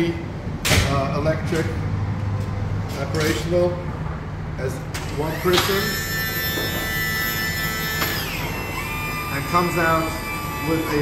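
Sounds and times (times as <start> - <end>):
electric motor whining: 5.2 - 11.0.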